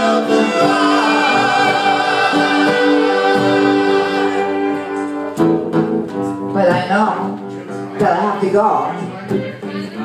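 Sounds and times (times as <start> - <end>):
person singing: 0.0 - 5.3
acoustic guitar strummed: 0.0 - 8.3.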